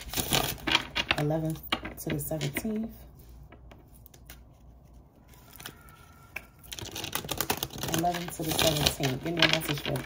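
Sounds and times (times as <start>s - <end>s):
cards being shuffled: 3.4s - 10.0s.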